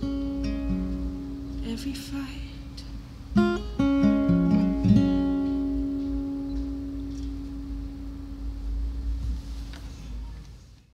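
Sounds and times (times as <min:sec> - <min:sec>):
acoustic guitar chord ringing: 0:00.0 - 0:09.5
low hum: 0:04.4 - 0:10.2.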